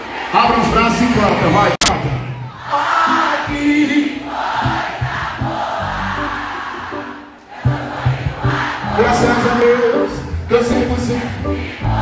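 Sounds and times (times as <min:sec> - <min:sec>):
crowd singing along: 0:02.5 - 0:12.0
live band playing: 0:02.9 - 0:12.0.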